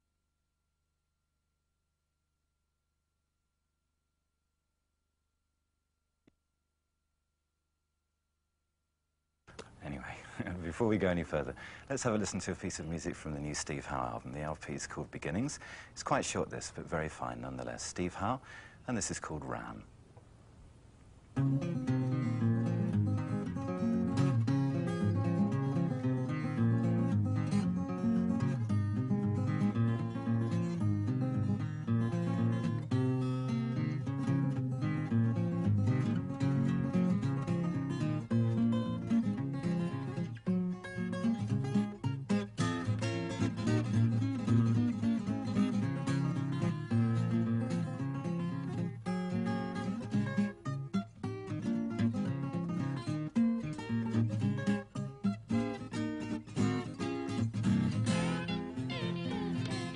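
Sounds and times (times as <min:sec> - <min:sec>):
acoustic guitar picking: 0:21.4 - 0:59.9.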